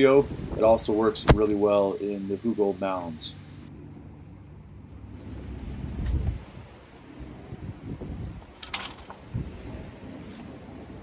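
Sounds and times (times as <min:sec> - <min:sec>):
low rumbling and rustling: 0:03.2 - 0:11.0.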